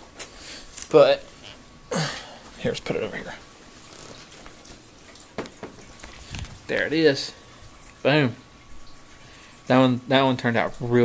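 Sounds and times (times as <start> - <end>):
soft knocks and rustles: 5.4 - 6.6.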